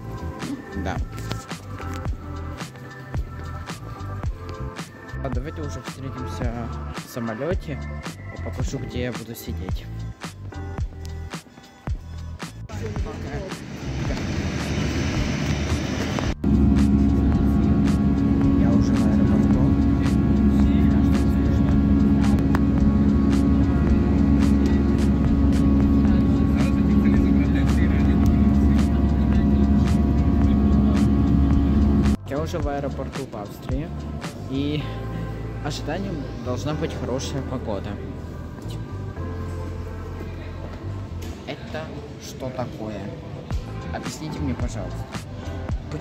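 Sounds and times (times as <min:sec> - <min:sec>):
airliner engine drone in cabin: 0:13.1 - 0:32.2.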